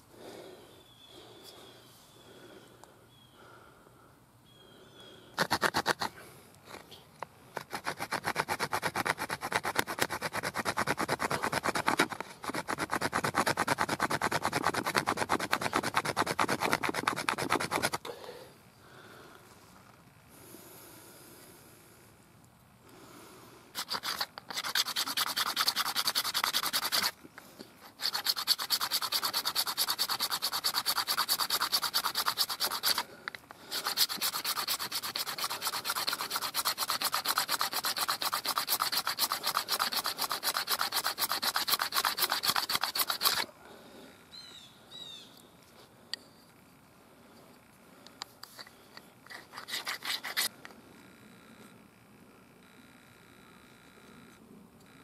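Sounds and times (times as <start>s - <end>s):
bone rasping on stone: 5.4s - 6.2s, 7.6s - 18.0s, 23.7s - 27.2s, 27.8s - 43.5s, 48.4s - 50.6s
light scrapes: 48.4s - 50.5s.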